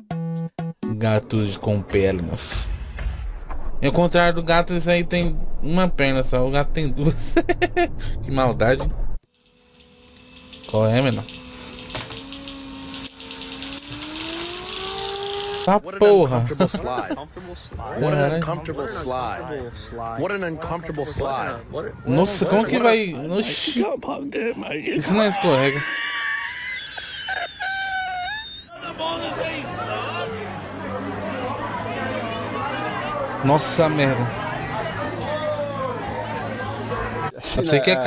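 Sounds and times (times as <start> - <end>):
machine whine rising in pitch: 9.3 - 15.7
crowd chatter and shouting: 17.4 - 23.8, 28.7 - 38.0.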